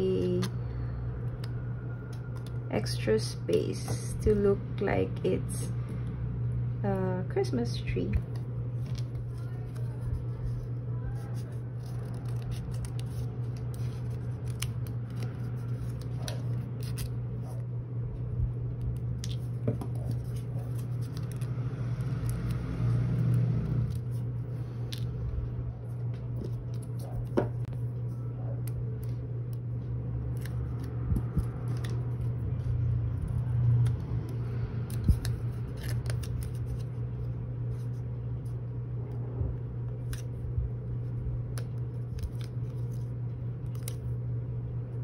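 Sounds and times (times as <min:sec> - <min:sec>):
steady low hum: 0:00.0 - 0:45.0
steady low rumble: 0:00.0 - 0:45.0
scissors cutting paper and tape: 0:08.1 - 0:17.6, 0:18.8 - 0:25.2, 0:30.2 - 0:37.0.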